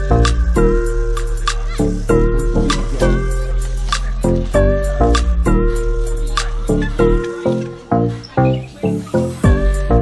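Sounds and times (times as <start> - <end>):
music with pitched notes and bass: 0.0 - 10.0.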